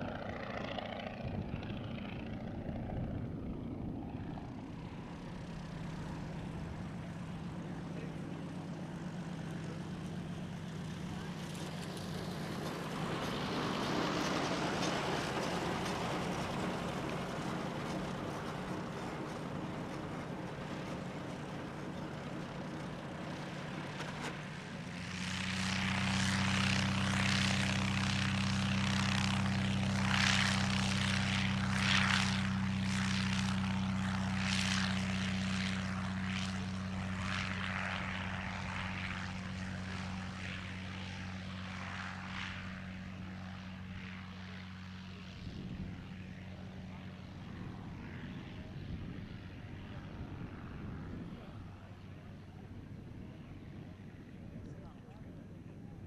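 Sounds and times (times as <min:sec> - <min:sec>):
propeller plane engine at full throttle: 0:00.0 - 0:56.0.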